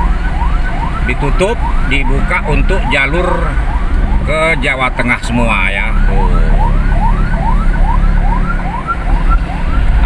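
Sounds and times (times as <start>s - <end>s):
emergency siren whooping: 0.0s - 10.0s
road and engine rumble: 0.0s - 10.0s.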